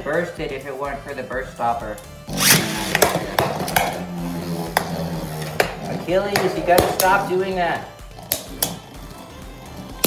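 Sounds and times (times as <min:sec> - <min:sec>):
spinning top launched: 0:02.3 - 0:04.0.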